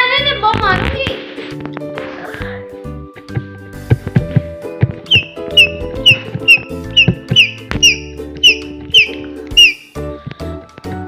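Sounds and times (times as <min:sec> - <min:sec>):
background music: 0:00.0 - 0:11.0
parakeet shrill calls: 0:05.1 - 0:10.0.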